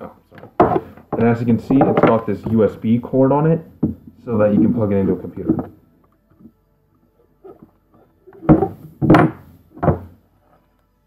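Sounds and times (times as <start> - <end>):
knocks and thumps on desk: 0.4 - 2.6, 3.8 - 4.7, 8.4 - 10.1.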